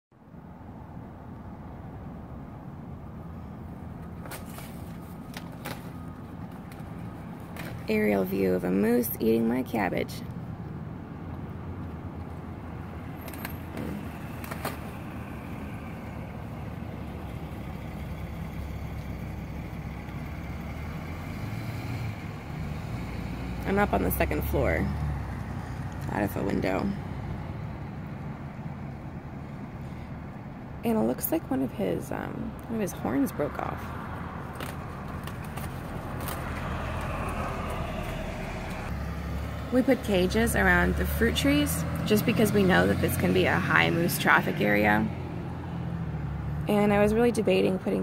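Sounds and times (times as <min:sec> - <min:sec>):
distant road traffic rumble: 0:00.1 - 0:48.0.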